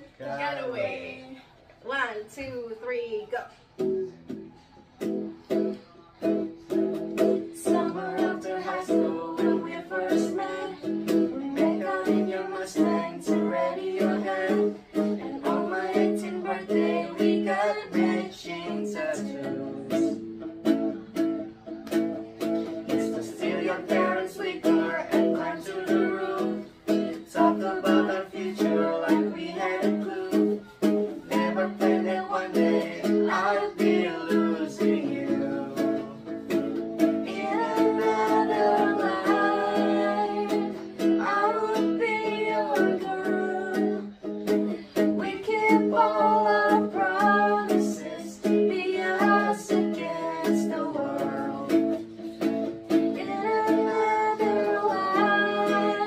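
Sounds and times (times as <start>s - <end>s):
acoustic guitar strumming: 3.7s - 56.0s
voices singing along: 6.7s - 21.7s, 22.4s - 56.0s
woman singing: 7.4s - 20.2s, 22.8s - 36.2s, 37.2s - 52.1s, 53.0s - 56.0s.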